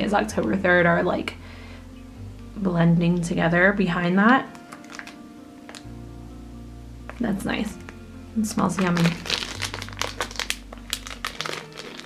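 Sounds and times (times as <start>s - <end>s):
plastic wrapping crinkling: 4.5s - 5.9s, 8.6s - 12.0s.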